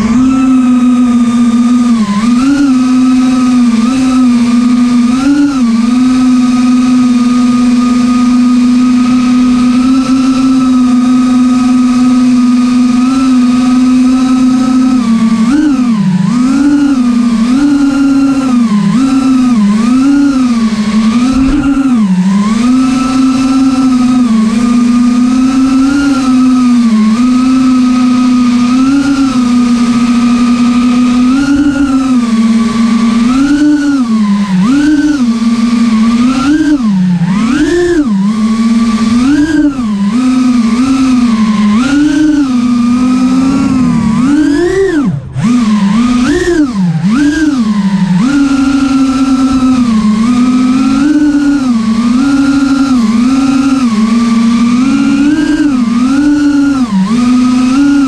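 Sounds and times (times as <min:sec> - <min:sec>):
drone motors whining: 0:00.0 - 0:58.0.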